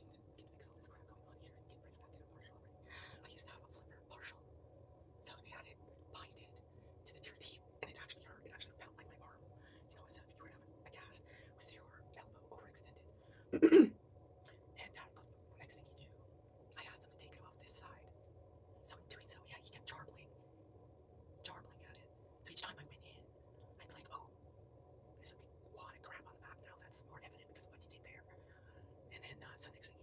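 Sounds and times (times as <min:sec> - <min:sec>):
woman whispering: 0:00.0 - 0:04.4, 0:05.2 - 0:13.8, 0:14.5 - 0:18.1, 0:18.8 - 0:20.4, 0:21.4 - 0:24.3, 0:25.2 - 0:30.0.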